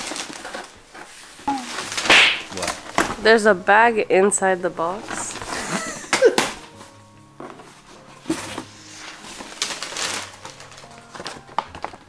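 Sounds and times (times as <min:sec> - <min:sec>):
paper bag rustling and crinkling: 0:00.0 - 0:03.2, 0:05.0 - 0:05.8, 0:06.6 - 0:12.0.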